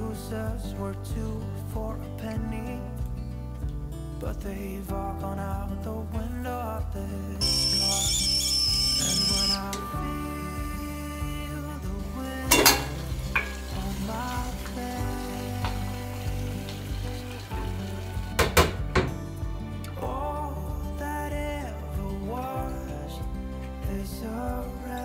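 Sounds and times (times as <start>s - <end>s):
soft background music: 0.0s - 25.0s
kettle hissing: 7.4s - 10.0s, 12.5s - 19.0s
metallic lid clank: 12.5s - 13.6s.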